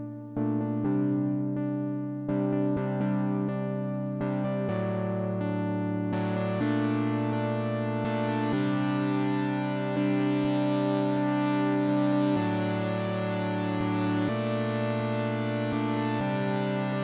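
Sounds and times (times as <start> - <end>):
synthesizer sustained chords: 2.3 - 17.0.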